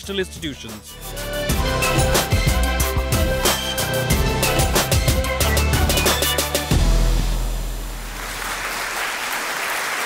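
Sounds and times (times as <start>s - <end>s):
audience applause: 8.1s - 10.0s.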